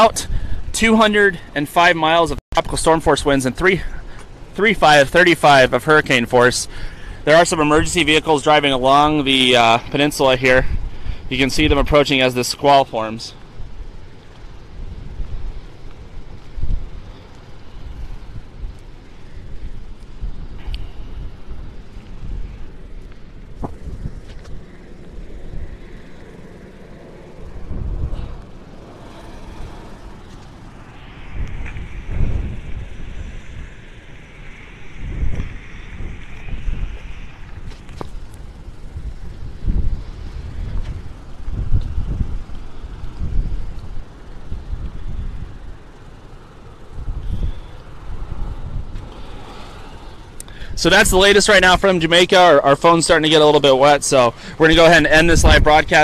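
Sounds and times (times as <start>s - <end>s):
high hiss: 6.5s - 56.0s
wind buffeting microphone: 6.7s - 12.2s, 13.4s - 51.8s, 54.0s - 56.0s.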